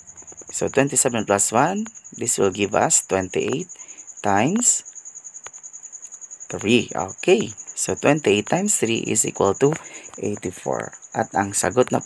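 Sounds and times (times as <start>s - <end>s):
cricket trilling: 0.0s - 12.0s
man speaking: 0.5s - 4.8s, 6.5s - 12.0s.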